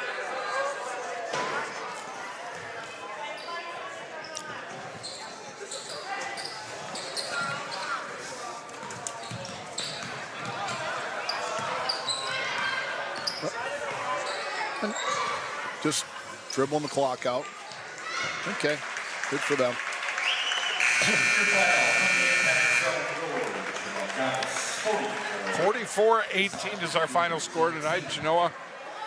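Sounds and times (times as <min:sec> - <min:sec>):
crowd chatter: 0:00.0 - 0:29.0
sneaker squeaks: 0:03.3 - 0:08.1, 0:08.8 - 0:15.4.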